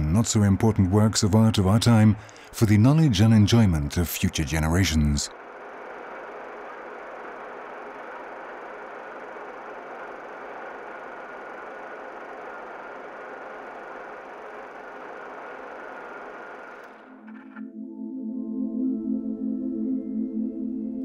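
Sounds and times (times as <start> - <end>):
printing press running: 0.0 - 17.5.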